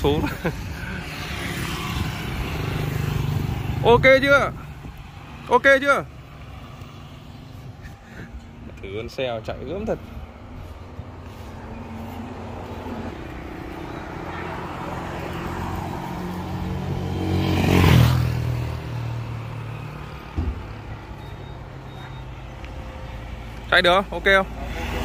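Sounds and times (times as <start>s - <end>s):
vehicle passing: 0.0s - 25.0s.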